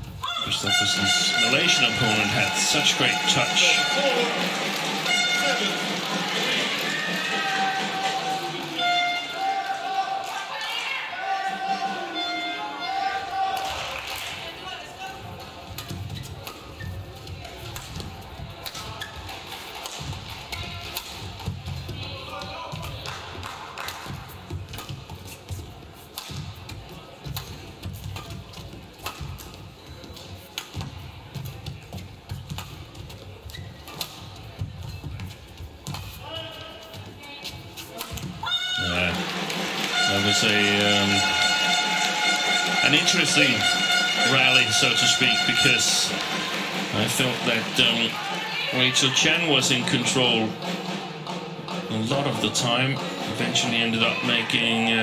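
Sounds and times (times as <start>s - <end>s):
loud music: 0.5s - 9.4s, 38.8s - 55.0s.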